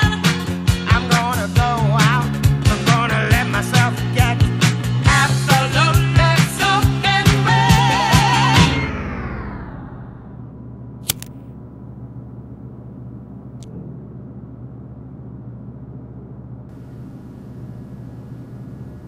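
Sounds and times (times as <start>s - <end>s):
music: 0.0s - 9.6s
low hum: 5.0s - 19.0s
sharp click: 11.0s - 11.5s.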